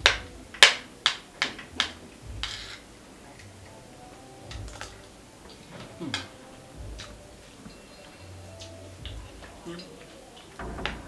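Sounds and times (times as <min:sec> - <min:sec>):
spoon scraping plate: 0:02.4 - 0:02.9.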